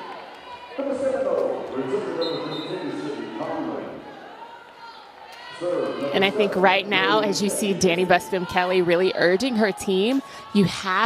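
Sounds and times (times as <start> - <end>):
indistinct crowd voices: 0.0 - 11.0.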